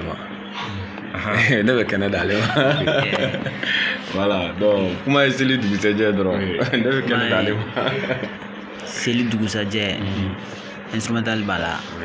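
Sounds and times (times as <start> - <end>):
men talking: 0.0 - 12.0
men laughing: 2.2 - 4.2, 6.4 - 8.6.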